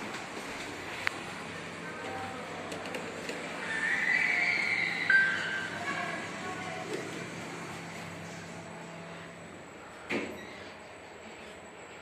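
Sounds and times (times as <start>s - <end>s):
elevator high-pitched squeal: 3.6s - 6.0s, 10.3s - 10.8s.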